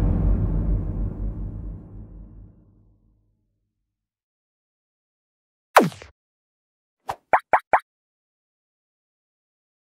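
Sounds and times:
rising bloop pops: 7.1s - 7.8s.

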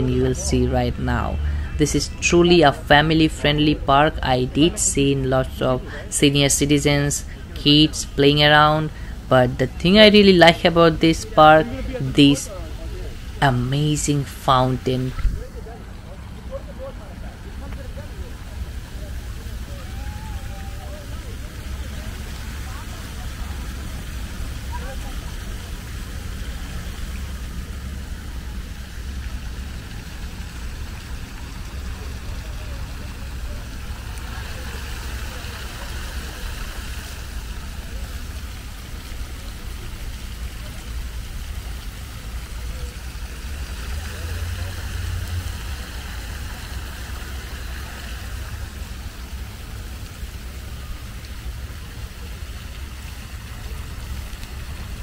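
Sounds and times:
fountain jets splashing: 0.0s - 55.0s.

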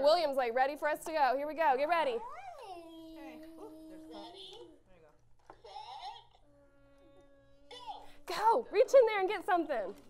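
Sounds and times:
child vocalizing: 2.2s - 4.7s, 5.6s - 8.2s.

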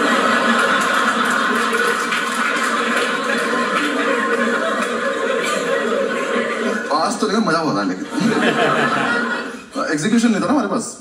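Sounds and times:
audience clapping: 0.0s - 6.7s
audience laughing: 0.0s - 10.6s.

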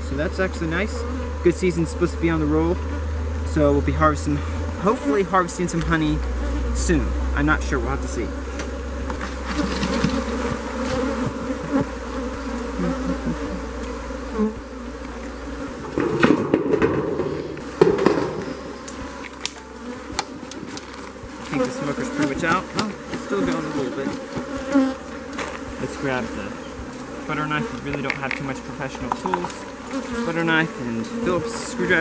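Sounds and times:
bees buzzing: 0.0s - 32.0s
metal sheet clattering on wood: 15.9s - 18.4s.

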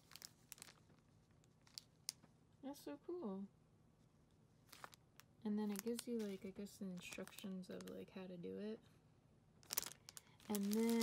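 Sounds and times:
paper sheet crackling: 0.0s - 2.0s, 4.7s - 5.0s, 5.6s - 8.0s, 9.6s - 11.0s
plastic packaging crinkling: 0.0s - 2.3s, 4.6s - 8.1s, 9.6s - 11.0s.

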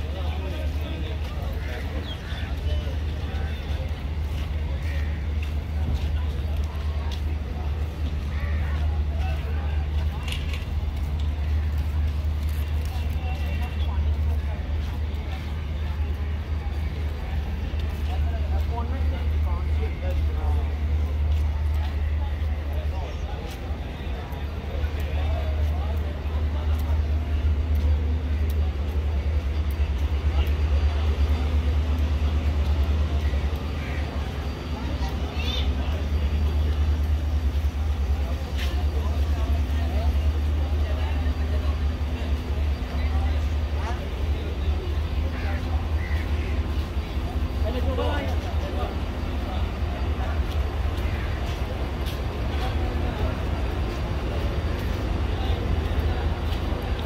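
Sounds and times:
low engine rumble: 0.0s - 57.0s
people talking: 0.0s - 57.0s.

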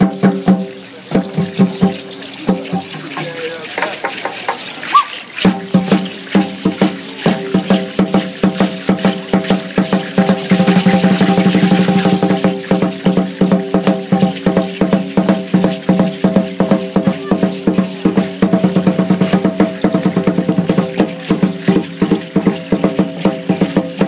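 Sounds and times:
drum beaten in steady rhythm: 0.0s - 24.0s.

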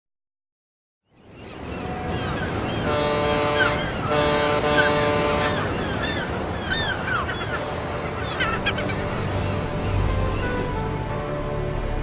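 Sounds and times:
seabirds calling: 1.1s - 12.0s
sea wash: 1.3s - 12.0s
ship's horn blasts: 1.8s - 12.0s.

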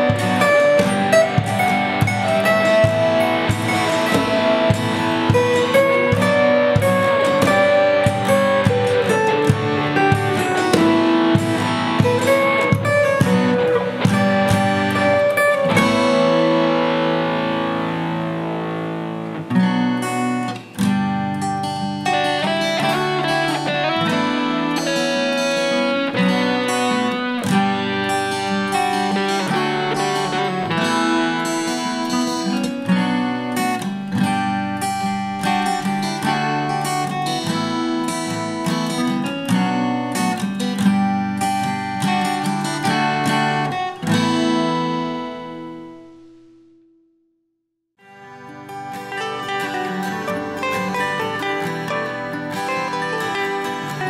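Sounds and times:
acoustic guitar music: 0.0s - 47.3s, 48.0s - 54.0s.

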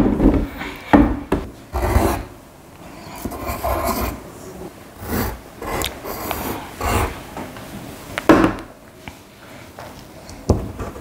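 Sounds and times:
pencil scratching on paper: 1.7s - 2.3s, 3.0s - 4.2s, 5.0s - 7.2s.

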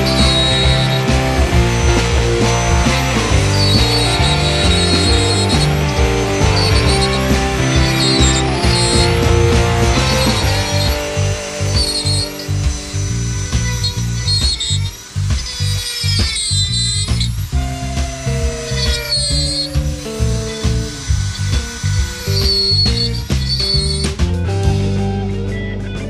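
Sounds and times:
rotary tool whining: 0.0s - 24.1s
background music with steady beat: 0.0s - 26.0s.

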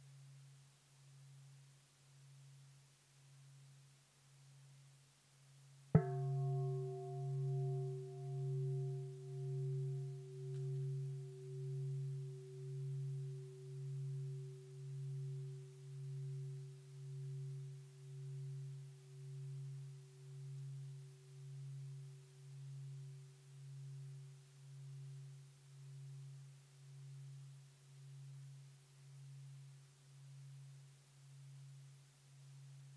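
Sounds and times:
metal bowl bell ringing: 6.0s - 20.9s.

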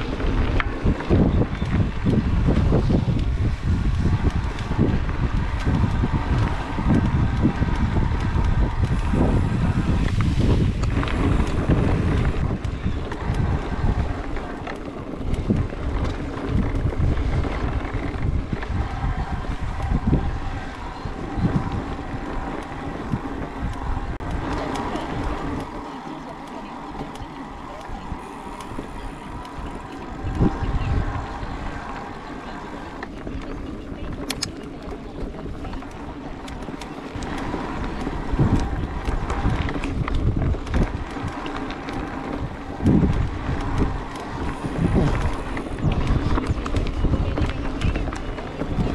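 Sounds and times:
bike rattling over bumpy ground: 0.0s - 48.9s
wind on microphone: 0.0s - 48.9s.

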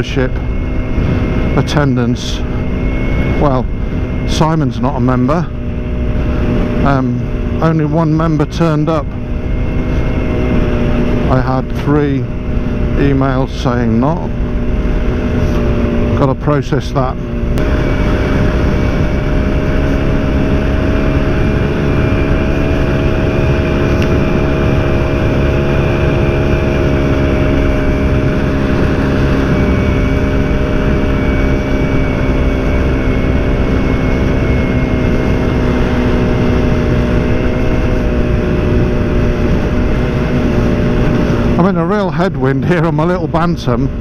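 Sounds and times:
motorcycle engine running: 0.0s - 44.0s
wind rushing over microphone: 0.0s - 44.0s.

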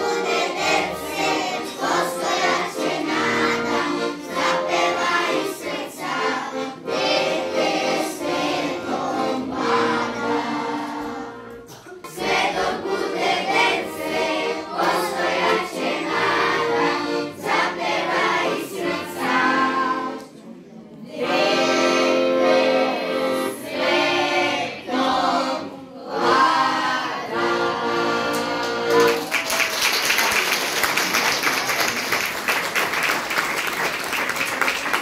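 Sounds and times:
children's choir singing: 0.0s - 29.2s.

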